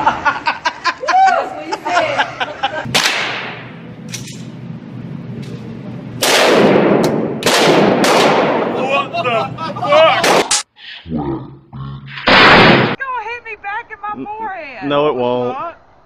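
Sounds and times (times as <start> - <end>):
excited voices: 0.9 - 2.6
revolver shots echoing indoors: 2.9 - 4.6, 5.4 - 8.8, 10.2 - 10.7, 12.2 - 13.0.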